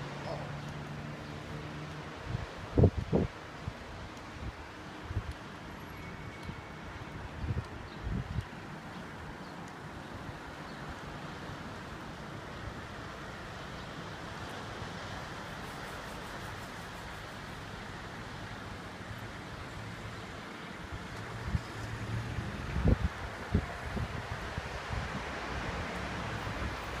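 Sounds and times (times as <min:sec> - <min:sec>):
road traffic: 0:00.0 - 0:27.0
wind buffeting microphone: 0:02.2 - 0:05.4, 0:07.2 - 0:09.4, 0:22.3 - 0:25.9
distant surf: 0:08.6 - 0:27.0.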